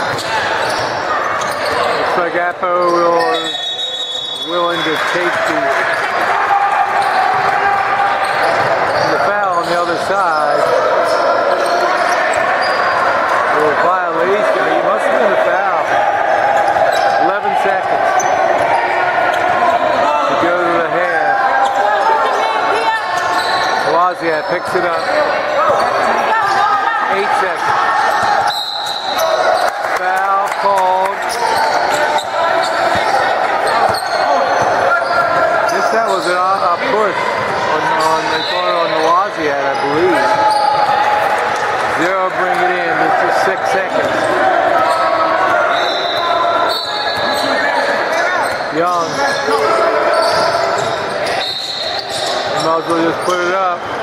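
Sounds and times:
echoing crowd voices: 0.0 - 54.0.

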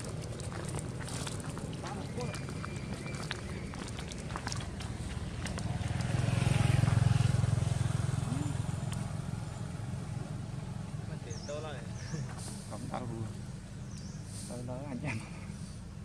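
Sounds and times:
vehicle engine rumble passing: 0.0 - 14.8.

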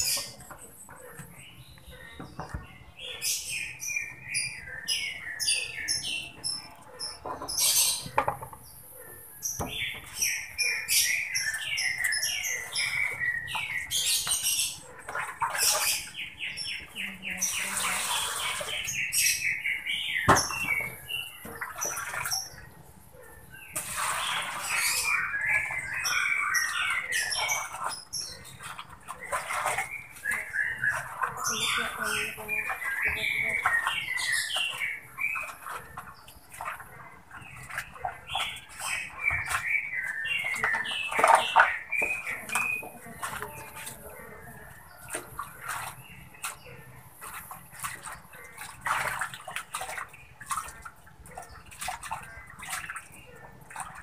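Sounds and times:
small birds chirping: 0.0 - 54.0.

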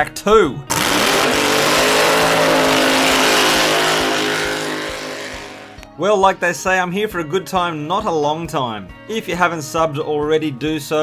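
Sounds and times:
racing car engine at high revs: 0.7 - 5.8.

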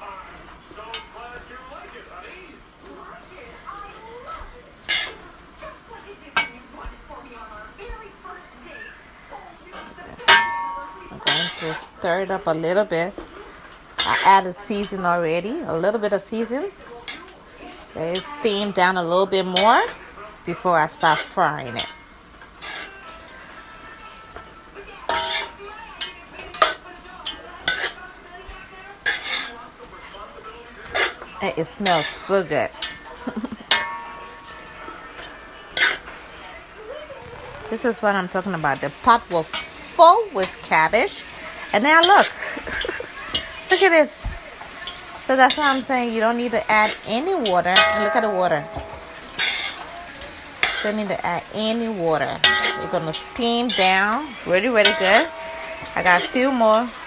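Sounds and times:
cabbage being stirred: 0.0 - 57.0
spoon knocking and scraping pot: 10.2 - 12.4, 14.0 - 15.1, 25.1 - 28.0, 30.8 - 33.0, 46.8 - 57.0
utensil knocking on metal pot: 47.8 - 49.5.

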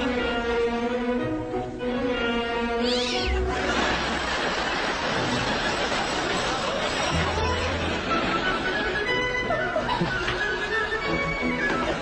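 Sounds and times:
music with long held notes: 0.0 - 3.5, 7.1 - 12.0
cat meowing: 2.8 - 3.6.

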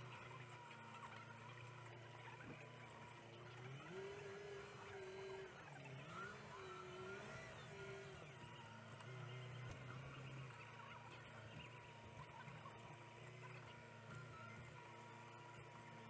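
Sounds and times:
tractor engine revving: 0.0 - 16.0.

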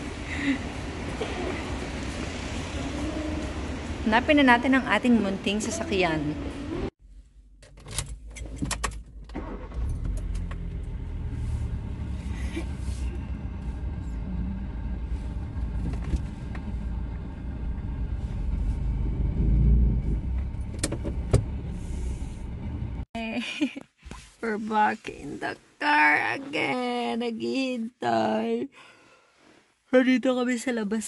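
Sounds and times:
car engine idling: 9.0 - 23.0.

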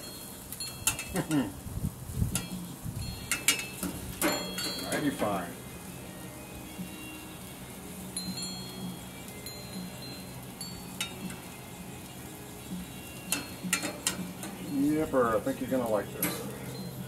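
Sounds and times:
wind chimes ringing: 0.0 - 1.6, 2.3 - 17.0.

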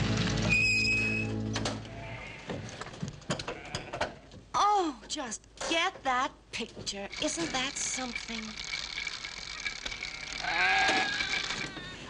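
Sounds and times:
sheep bleating: 1.8 - 2.7, 3.5 - 4.3, 10.0 - 11.9.

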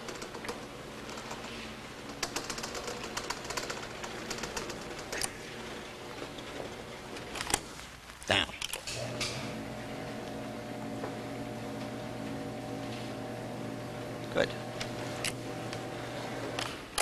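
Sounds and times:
rapid clicks: 0.0 - 5.4.

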